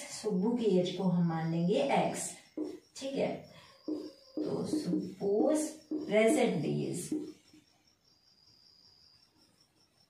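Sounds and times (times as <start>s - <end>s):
cricket trilling: 0.0s - 10.0s.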